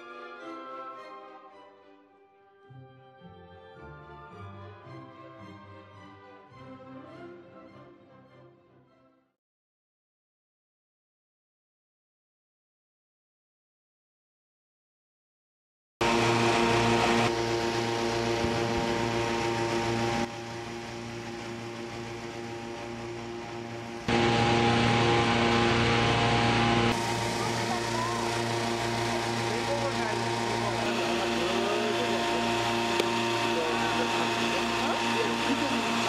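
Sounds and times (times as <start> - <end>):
engine-driven fans humming: 16.0 - 36.0.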